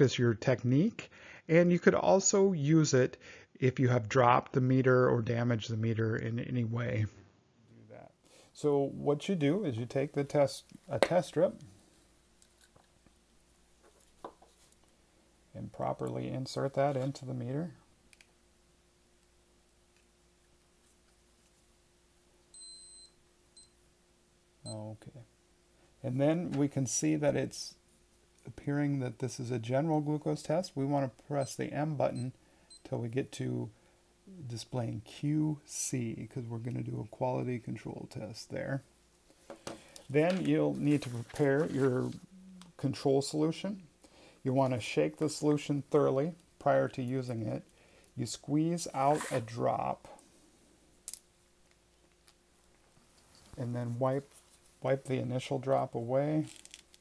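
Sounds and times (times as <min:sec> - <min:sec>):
blood glucose meter beeping: 0:22.5 - 0:23.8, 0:31.4 - 0:32.9.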